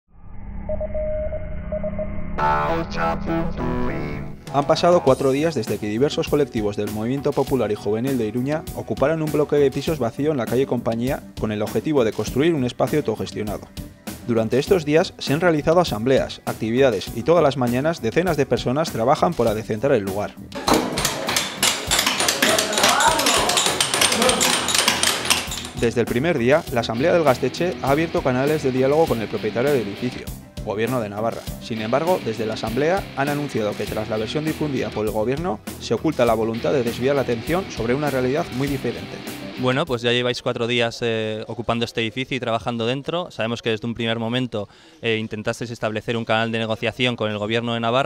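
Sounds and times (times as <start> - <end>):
short electronic beeps: 0.6 - 2.4
background voices: 2.4 - 5.3
background music: 2.4 - 44.0
tapping and knocking: 20.6 - 25.8.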